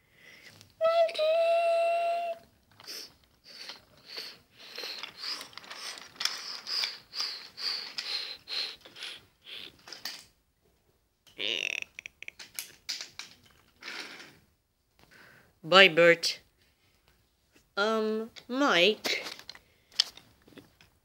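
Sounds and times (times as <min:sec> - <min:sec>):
toy train wheels clacking on track: 0:02.8 - 0:09.2
scattered clicks: 0:11.9 - 0:14.2.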